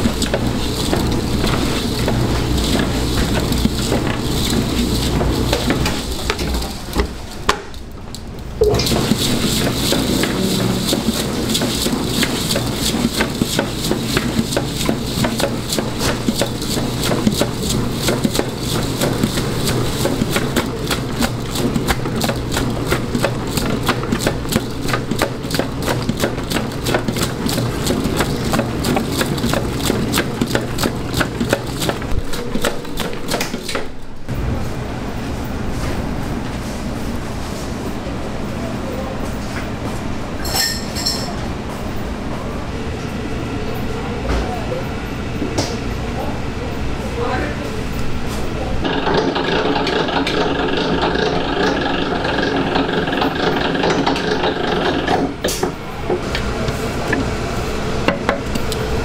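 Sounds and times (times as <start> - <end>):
stand mixer motor hum: 0.0 - 7.2, 8.8 - 34.0, 48.8 - 59.0
dough hook clicking and knocking: 9.9 - 33.9, 48.8 - 56.2.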